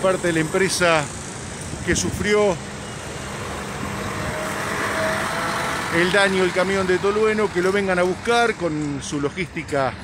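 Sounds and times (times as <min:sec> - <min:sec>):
heavy truck engines rumbling: 0:00.0 - 0:10.0.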